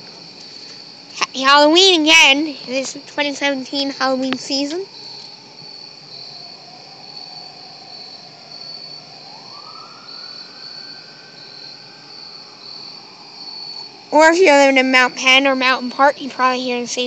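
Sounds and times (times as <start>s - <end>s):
crickets chirping: 0.0s - 17.0s
faint siren wail: 4.8s - 14.2s.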